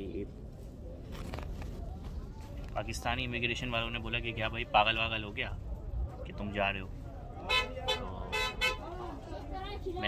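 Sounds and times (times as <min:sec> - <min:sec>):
vehicle horn toots: 0:07.5 - 0:08.9.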